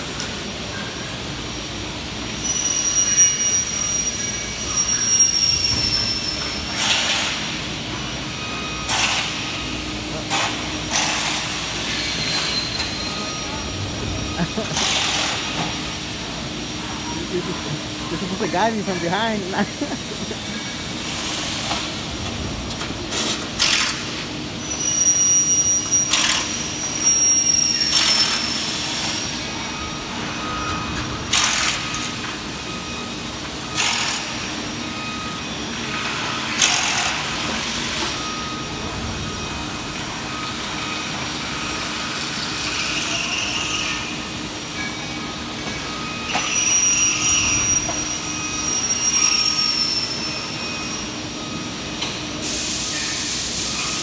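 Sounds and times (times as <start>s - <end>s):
machinery hum: 0.0s - 54.0s.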